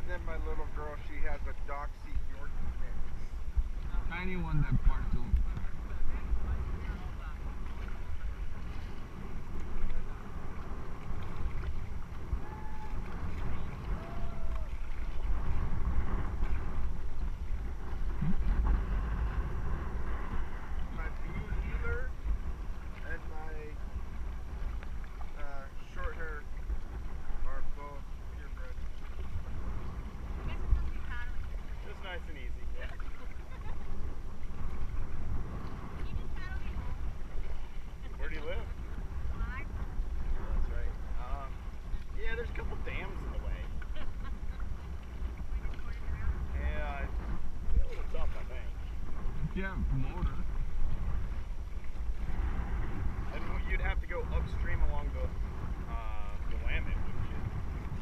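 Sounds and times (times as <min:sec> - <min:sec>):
paddles dipping into water: 0:00.0 - 0:58.0
wind rumbling on microphone: 0:00.0 - 0:58.0.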